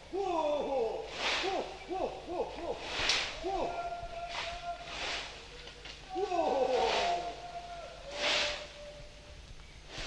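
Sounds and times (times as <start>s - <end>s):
hissing bursts: 2.8s - 3.5s, 4.3s - 5.4s, 8.1s - 8.8s.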